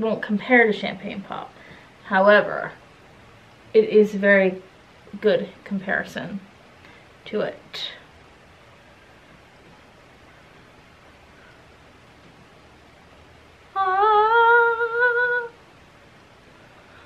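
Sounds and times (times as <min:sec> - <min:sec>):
faint room hiss: 0:00.0 - 0:17.0.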